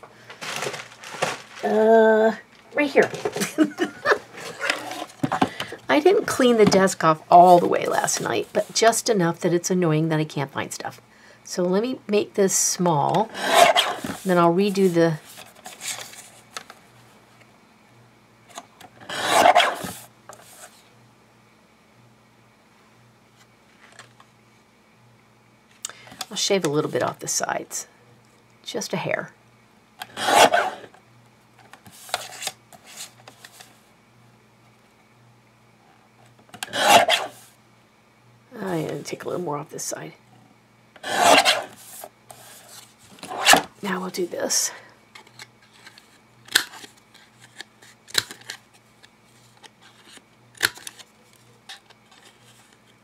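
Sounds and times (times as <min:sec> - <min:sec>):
paper rustle: 0:00.2 - 0:01.8
paper trimmer blade cutting paper: 0:13.3 - 0:14.1, 0:19.1 - 0:19.9, 0:30.1 - 0:30.9, 0:36.6 - 0:37.4, 0:41.0 - 0:41.8.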